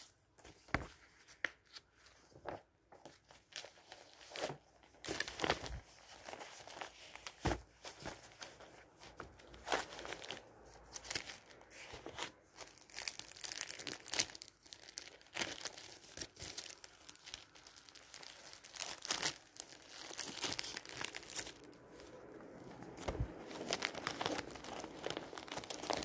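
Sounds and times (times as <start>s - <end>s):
paper rustling: 0.0s - 14.2s, 15.0s - 26.0s
plastic sleeve crinkling: 1.6s - 26.0s.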